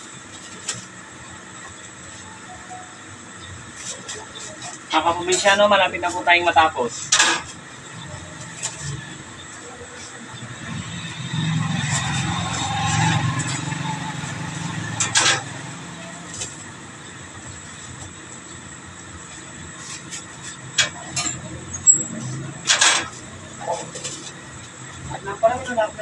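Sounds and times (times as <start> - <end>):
vehicle engine rumble passing: 7.5 - 26.0.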